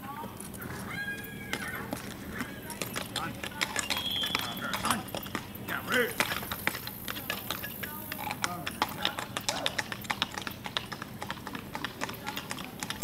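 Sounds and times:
hooves clip-clopping on paved road: 0.0s - 13.0s.

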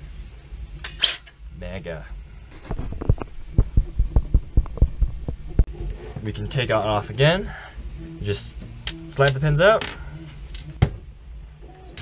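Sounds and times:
dull low handling thumps: 2.5s - 5.7s.

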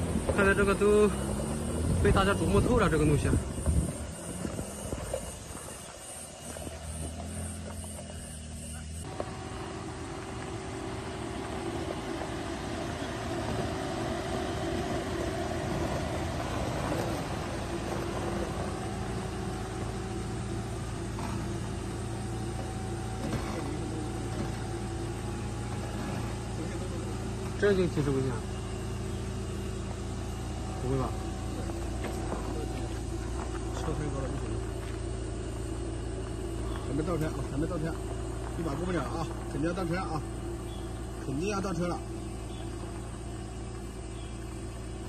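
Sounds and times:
engine running under load: 0.0s - 45.0s.

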